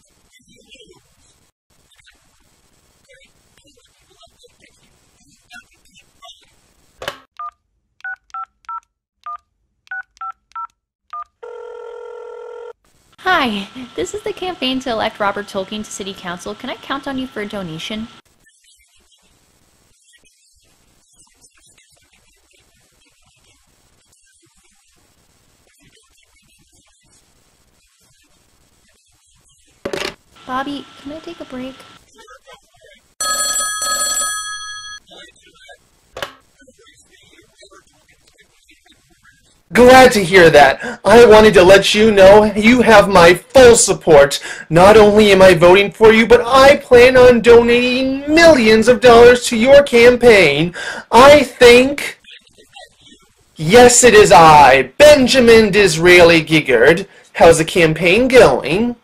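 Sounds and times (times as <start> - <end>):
telephone ringing tone: 11.4 - 12.8, 33.2 - 35.1.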